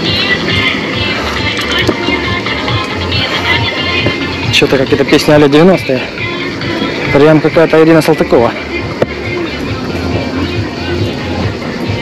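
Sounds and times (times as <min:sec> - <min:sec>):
pop song over loudspeakers: 0:00.0 - 0:12.0.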